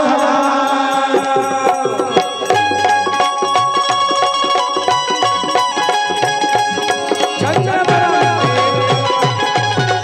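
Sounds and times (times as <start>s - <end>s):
held melody line: 0.0s - 10.0s
tabla beat: 0.0s - 10.0s.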